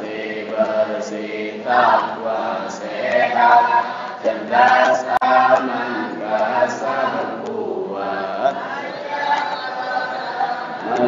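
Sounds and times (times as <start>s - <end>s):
voices chanting in unison: 0.0s - 11.0s.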